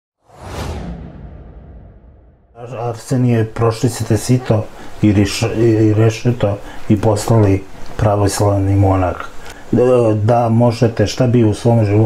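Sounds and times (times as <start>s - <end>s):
whoosh sound effect: 0.2s - 2.4s
low rumble: 0.3s - 2.6s.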